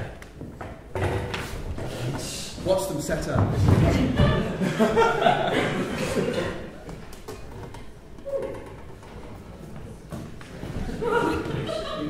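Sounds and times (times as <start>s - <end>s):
footsteps on wooden floor: 0.3s - 5.0s, 6.8s - 11.9s.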